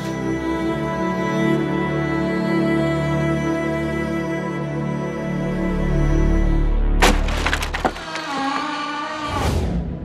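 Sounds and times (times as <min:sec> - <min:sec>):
sharp crack and splintering crackles: 0:07.0 - 0:08.6.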